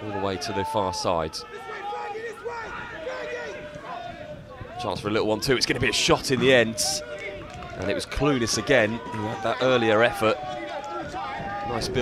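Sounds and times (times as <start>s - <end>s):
distant people calling and shouting: 0.0s - 12.0s.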